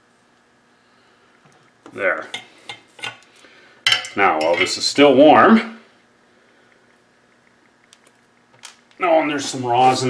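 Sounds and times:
light clicks of small parts: 6.7 - 9.0.

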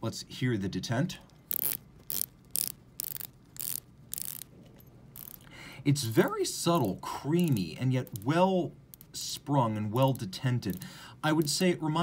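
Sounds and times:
watch bezel clicking: 1.4 - 4.5, 5.2 - 5.5, 6.7 - 9.2, 10.0 - 11.6.

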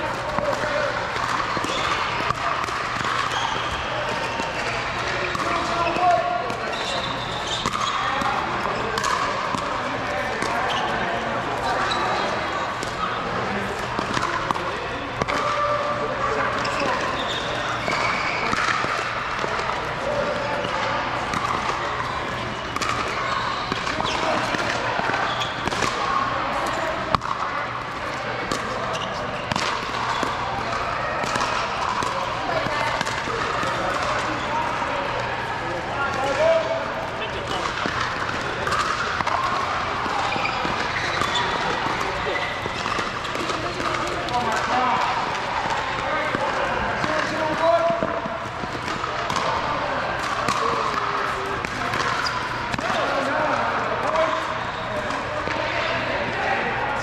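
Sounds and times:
paddles hitting plastic ball: 0.2 - 6.6, 8.9 - 9.8, 22.7 - 27.5, 29.5 - 34.4, 37.4 - 53.0.

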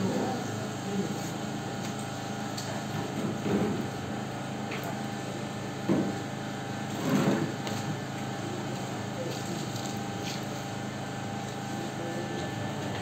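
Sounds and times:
steady mechanical hum: 0.0 - 13.0.

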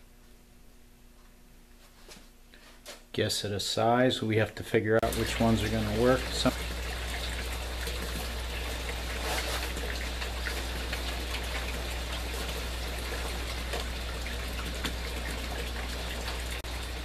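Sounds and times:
constant low hum: 0.0 - 17.0
water trickling and splashing: 5.0 - 17.0.

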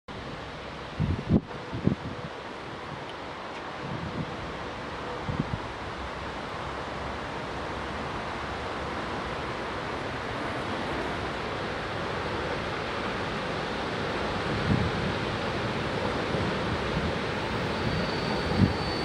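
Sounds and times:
train rushing noise: 0.2 - 19.0
wind buffeting microphone: 0.9 - 3.0, 3.8 - 4.5, 14.4 - 19.0.

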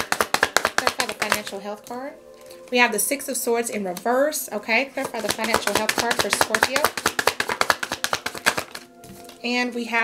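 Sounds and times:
cards being shuffled: 0.0 - 1.6, 5.0 - 9.4.

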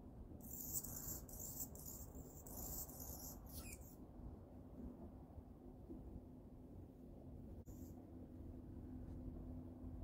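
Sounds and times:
steady low hum: 0.0 - 10.0
hummingbird buzzy song: 0.4 - 4.0.

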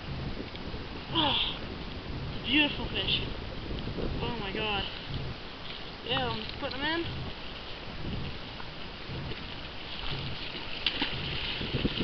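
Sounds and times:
wind buffeting microphone: 0.0 - 12.0
water lapping at rocks: 0.1 - 12.0
fish splashing in water: 8.4 - 12.0.

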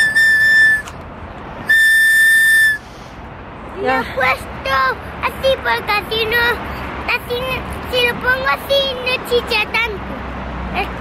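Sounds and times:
shrill whistle toots: 0.0 - 1.0, 1.7 - 2.9.

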